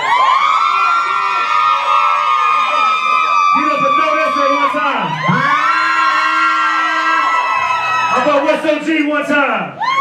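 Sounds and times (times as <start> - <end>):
long held yells: 0.0 - 8.6
crowd cheering and whooping: 0.0 - 8.9, 9.7 - 10.0.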